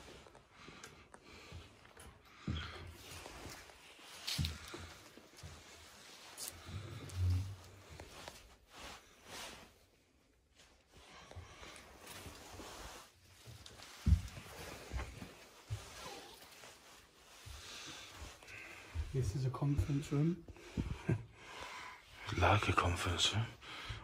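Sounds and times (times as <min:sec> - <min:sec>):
footsteps on debris-strewn floor: 0:01.0 - 0:08.7, 0:11.4 - 0:21.2
clothing rustling: 0:02.8 - 0:21.2.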